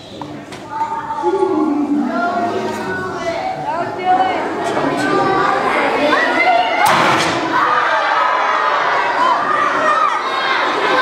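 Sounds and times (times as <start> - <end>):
children shouting and cheering: 0.0 - 11.0.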